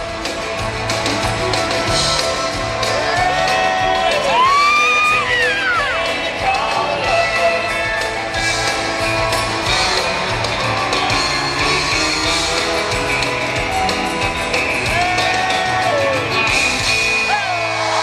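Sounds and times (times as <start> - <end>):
crowd cheering: 0.0 - 18.0
live country band playing: 0.0 - 18.0
loud whooping yell: 2.9 - 9.6, 14.8 - 18.0.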